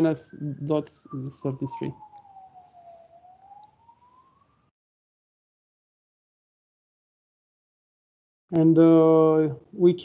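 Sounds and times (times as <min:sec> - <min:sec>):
faint rising wailing tone: 0:00.0 - 0:04.7.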